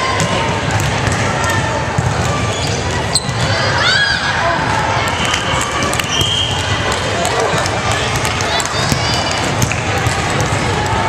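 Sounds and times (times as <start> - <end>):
people talking and calling: 0.0 - 11.0.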